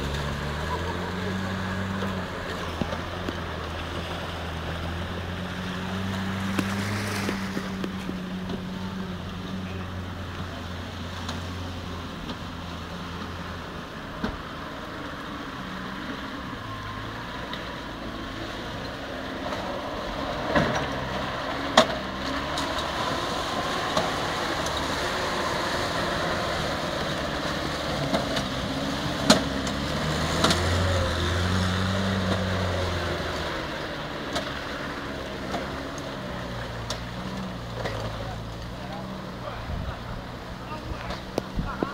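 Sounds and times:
vehicle engine revving: 0.0s - 41.9s
water splashing: 0.0s - 41.9s.

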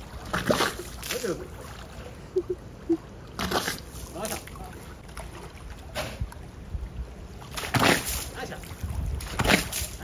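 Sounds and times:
walrus splashing water: 0.0s - 2.1s, 3.2s - 6.4s, 7.4s - 10.0s.

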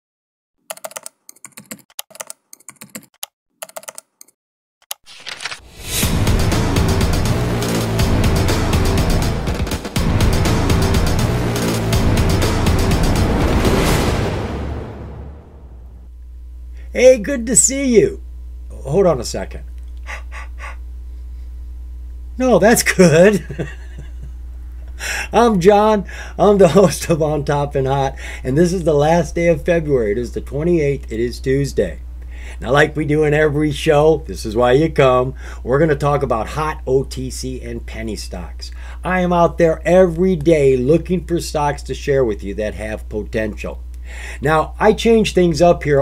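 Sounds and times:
keyboard typing: 0.6s - 5.6s
steady low hum: 14.4s - 46.0s
man breathing noises: 20.0s - 21.6s, 24.8s - 25.4s, 26.0s - 26.4s, 28.1s - 28.5s, 32.2s - 32.6s, 35.4s - 35.7s, 44.0s - 44.4s.

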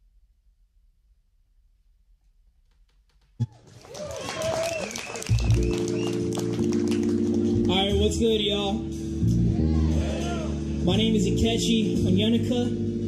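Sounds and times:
live band playing: 5.0s - 12.6s.

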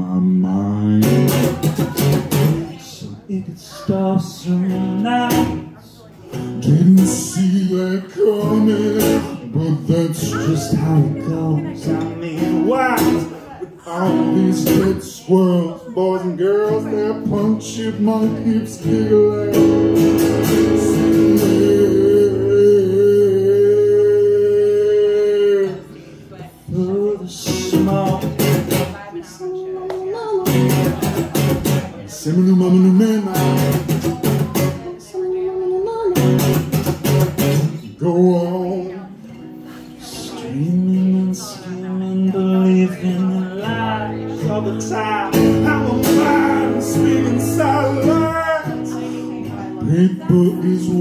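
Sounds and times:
acoustic guitar strumming: 0.0s - 29.2s, 29.8s - 51.0s
person singing: 6.4s - 51.0s.

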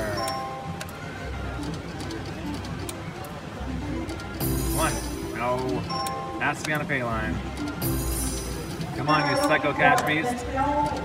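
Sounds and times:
slot machine reels spinning: 0.0s - 2.9s, 3.9s - 11.0s
casino chatter: 0.0s - 11.0s.

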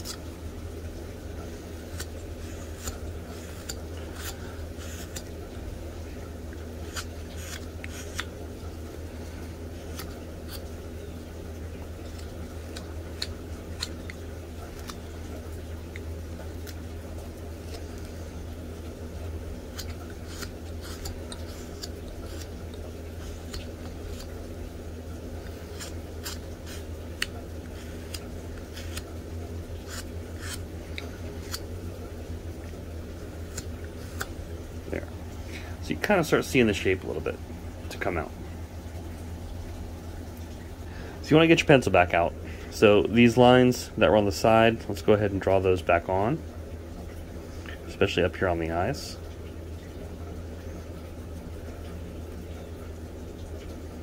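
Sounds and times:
steady low hum: 0.0s - 54.0s
pocket knife cutting wood: 1.9s - 5.3s, 6.8s - 8.3s, 19.6s - 24.4s, 25.6s - 29.1s, 29.8s - 31.7s, 33.4s - 34.4s.

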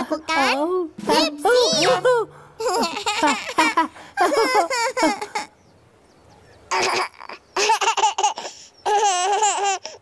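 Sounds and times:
baby giggling and laughing: 2.6s - 5.6s, 6.7s - 10.0s.

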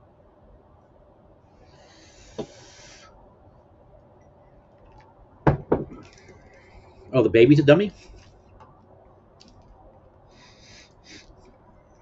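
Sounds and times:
faint background noise: 0.0s - 12.0s
brief hiss: 1.6s - 3.1s, 10.4s - 11.4s
thumps: 5.5s - 6.2s.

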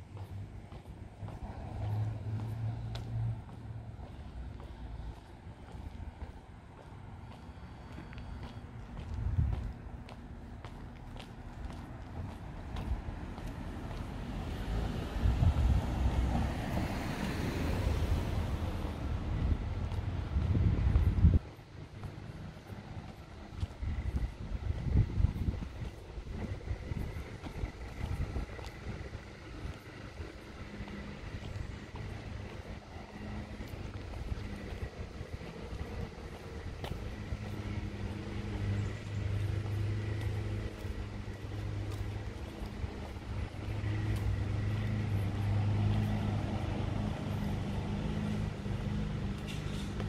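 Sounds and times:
low motor hum: 0.0s - 50.0s
wind buffeting microphone: 8.4s - 50.0s.

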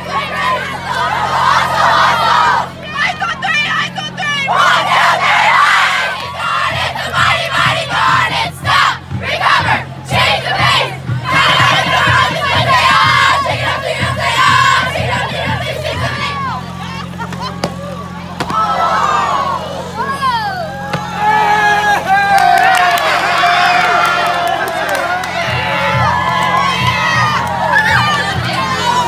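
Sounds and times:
girls shouting and cheering: 0.0s - 29.0s.

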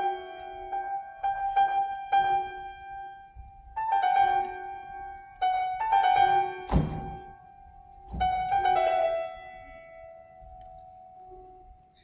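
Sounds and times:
grand piano played softly: 0.0s - 12.0s.

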